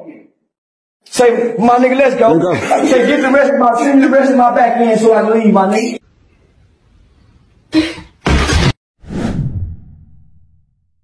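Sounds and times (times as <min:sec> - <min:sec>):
whoosh: 0:09.0 - 0:10.6.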